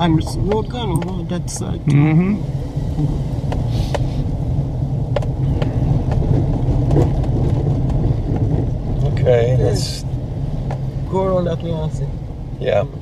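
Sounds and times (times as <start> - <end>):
car driving rumble inside cabin: 0.0 - 13.0.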